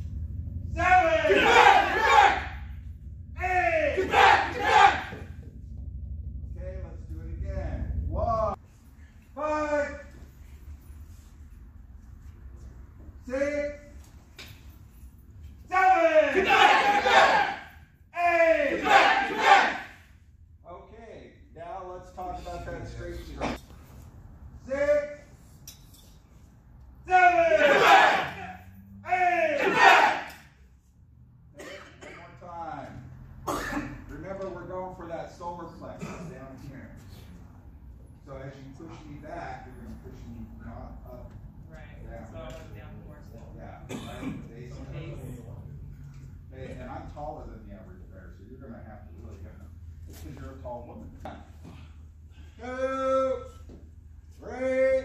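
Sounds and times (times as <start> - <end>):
steady low hum: 0.0 - 55.0
group shouting in unison: 0.8 - 2.7, 3.4 - 5.3, 15.7 - 20.0, 27.1 - 30.5.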